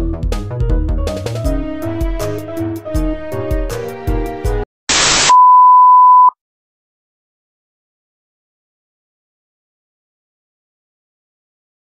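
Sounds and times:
background music: 0:00.0 - 0:04.7
high test-tone beep: 0:04.9 - 0:06.3.

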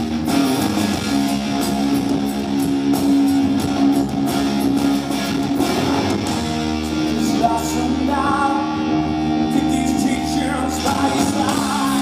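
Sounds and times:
bass guitar: 0:00.0 - 0:12.0
distorted electric guitar chords: 0:00.0 - 0:12.0.

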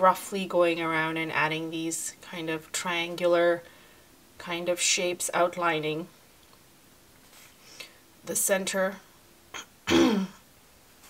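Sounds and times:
person clearing throat: 0:09.6 - 0:10.4.

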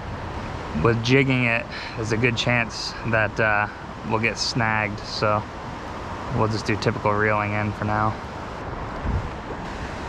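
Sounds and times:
river water flowing: 0:00.0 - 0:10.0
wind buffeting microphone: 0:00.0 - 0:10.0.

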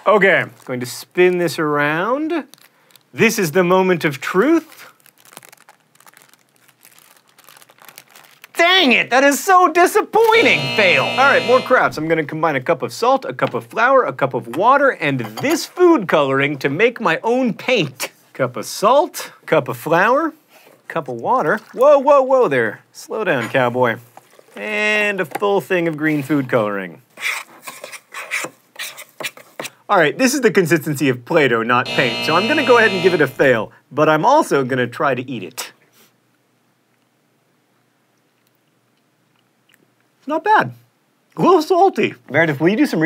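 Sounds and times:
wax paper crinkling: 0:00.3 - 0:01.3, 0:02.4 - 0:03.2, 0:04.5 - 0:08.7
spoon scraping dough in metal pot: 0:27.2 - 0:29.8.

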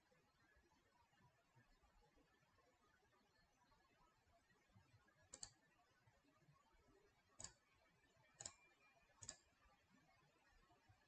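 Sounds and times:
sharp mouse clicks: 0:05.3 - 0:05.6, 0:08.4 - 0:08.6, 0:09.2 - 0:09.4.

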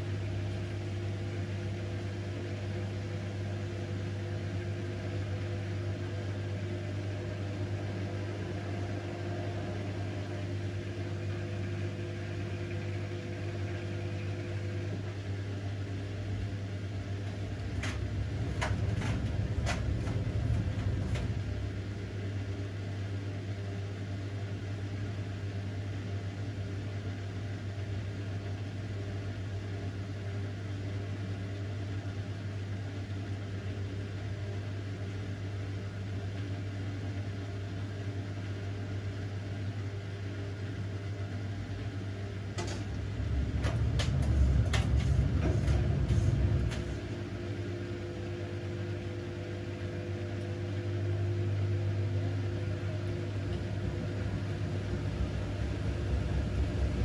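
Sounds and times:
washing machine drum hum: 0:00.0 - 0:25.2, 0:27.8 - 0:57.0
knocks and rumble: 0:17.4 - 0:21.8, 0:42.6 - 0:47.4.

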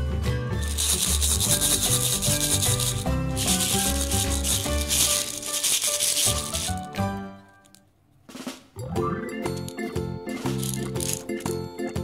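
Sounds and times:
background music: 0:00.0 - 0:07.8, 0:08.4 - 0:12.0
cardboard rubbing on microphone: 0:00.7 - 0:06.9.

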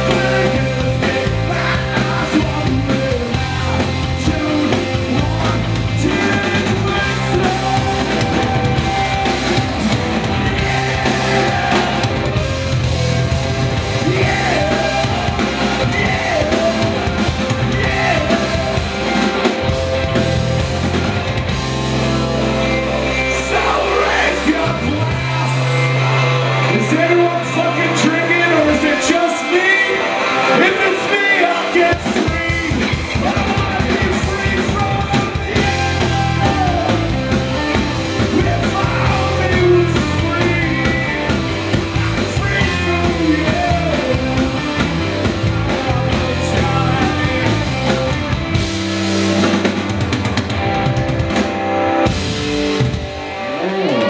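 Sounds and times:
person singing: 0:00.0 - 0:12.8, 0:13.8 - 0:19.6, 0:22.5 - 0:48.2
rock band playing live: 0:00.0 - 0:54.0.

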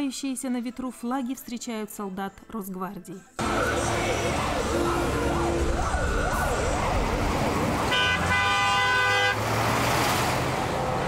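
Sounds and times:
vehicle siren wailing: 0:03.4 - 0:09.4
truck engines rumbling: 0:03.4 - 0:11.0
long horn blast: 0:07.8 - 0:09.6.

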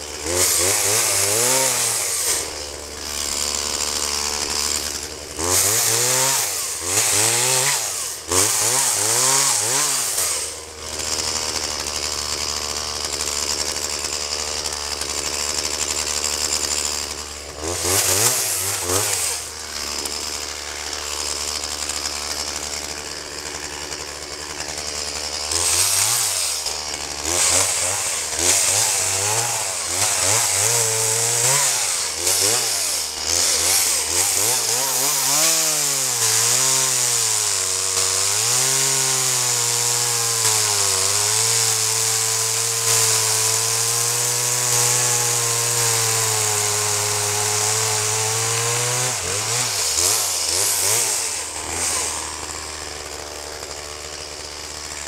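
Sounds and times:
chainsaw revving and cutting: 0:00.0 - 0:55.0.

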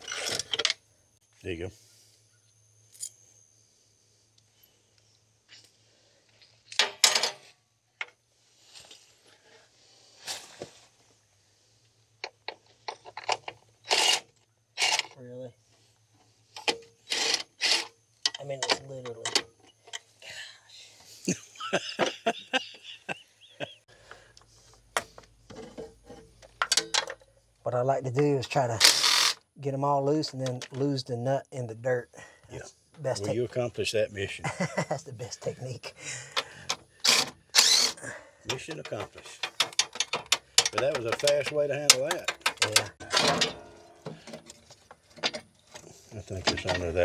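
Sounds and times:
cordless impact driver: 0:28.8 - 0:29.4, 0:37.0 - 0:38.0
hand tools clinking on metal: 0:36.4 - 0:47.0.

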